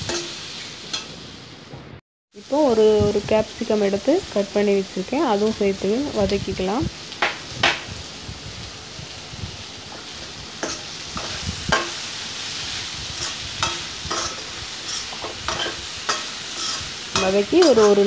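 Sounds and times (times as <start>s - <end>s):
vegetables sizzling in oil: 0.0s - 1.7s, 2.3s - 18.0s
spatula scraping pan: 13.2s - 18.0s.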